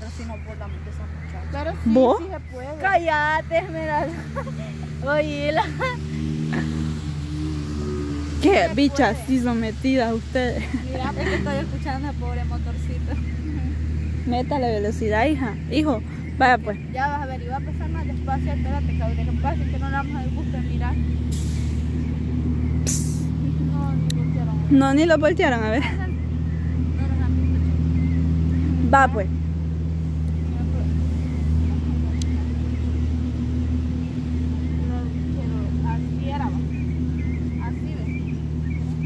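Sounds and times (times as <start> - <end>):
small engine running: 0.0 - 39.0
short hiss: 22.8 - 23.3.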